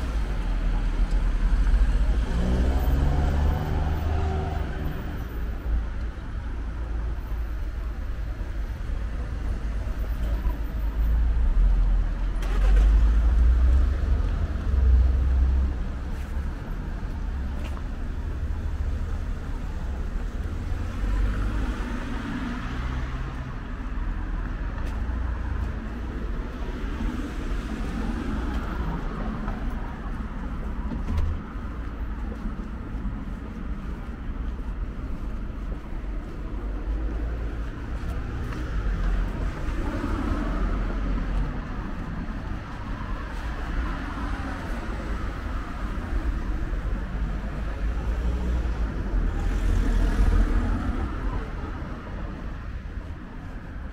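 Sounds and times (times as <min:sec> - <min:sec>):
cars driving past: 0:00.0 - 0:53.9.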